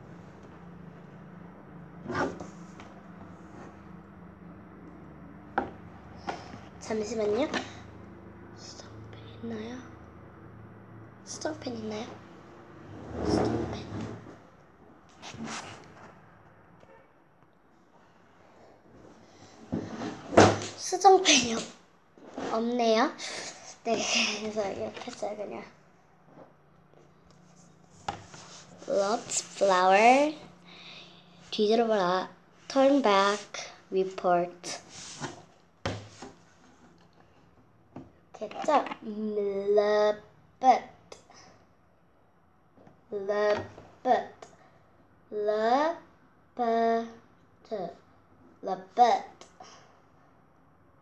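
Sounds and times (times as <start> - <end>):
rustling and handling noise: 15.1 - 16.4, 24.4 - 30.6, 34.6 - 39.0
loud thump against furniture: 19.7 - 20.8.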